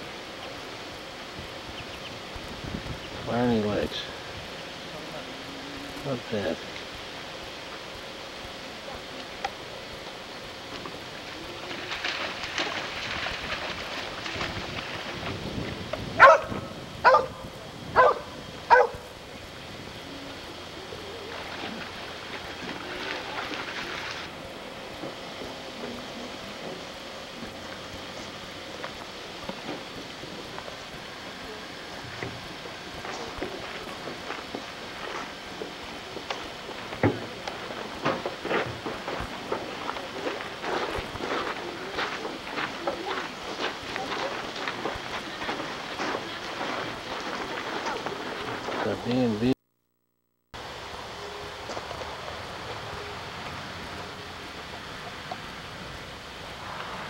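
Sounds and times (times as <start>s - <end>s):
steady outdoor rush: 0.0s - 49.6s
dog barking: 16.2s - 17.4s, 18.0s - 19.0s.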